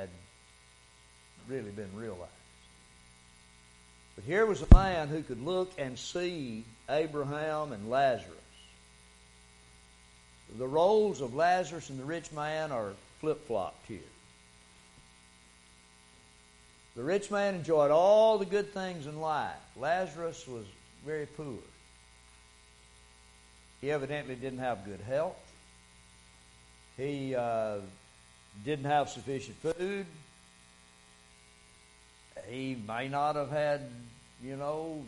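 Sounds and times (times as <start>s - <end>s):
steady electrical hum: 0.0s - 35.0s
man speaking: 1.4s - 2.4s, 4.2s - 8.4s, 10.5s - 14.2s, 17.0s - 21.7s, 23.8s - 25.4s, 27.0s - 28.0s, 28.6s - 30.2s, 32.4s - 35.0s.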